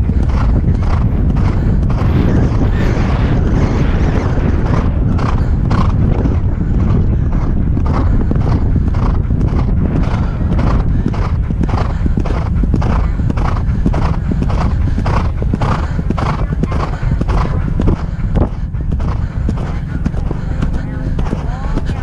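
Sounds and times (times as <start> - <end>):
horse hoofbeats galloping: 0.0 - 22.0
wind rumble on microphone: 0.0 - 22.0.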